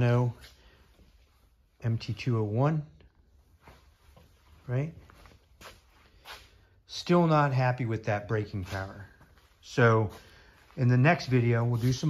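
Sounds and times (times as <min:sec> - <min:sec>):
soft breathing: 0:00.4 - 0:01.7, 0:09.1 - 0:10.8.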